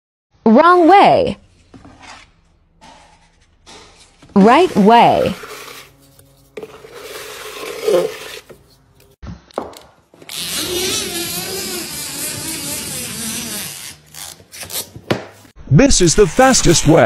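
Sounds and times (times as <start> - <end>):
compound scraping in plastic bucket: 4.6 - 6.0, 6.6 - 8.6
drywall machine whirring: 10.2 - 14.2.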